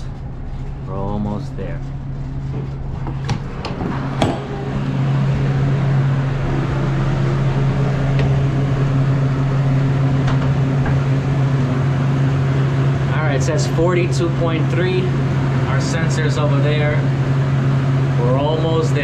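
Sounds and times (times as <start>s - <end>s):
refrigeration system humming: 0.0s - 19.0s.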